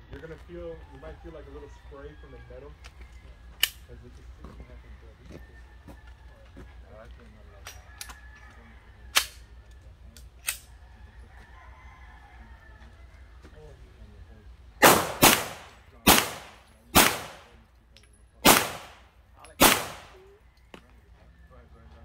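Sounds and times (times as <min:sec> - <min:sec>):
gunshots with echo: 0:14.8 - 0:17.6, 0:18.4 - 0:20.2.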